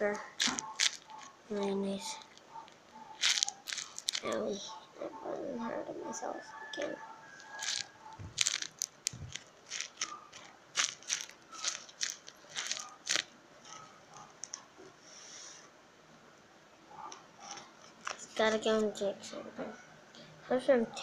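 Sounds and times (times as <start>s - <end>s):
paper and tape crinkling: 0.0s - 4.8s, 7.3s - 14.7s, 17.4s - 18.9s.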